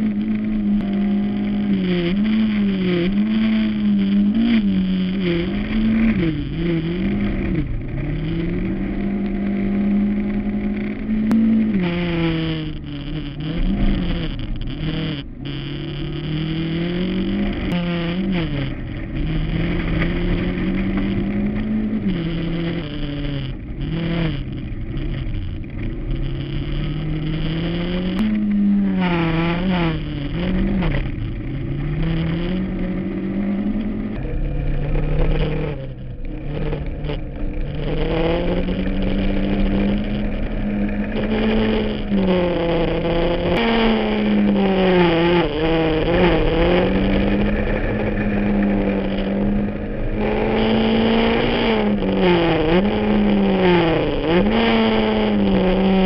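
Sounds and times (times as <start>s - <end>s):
tyres rumbling on gravel: 0.0s - 15.4s, 16.1s - 56.0s
rally car engine revving: 0.0s - 56.0s.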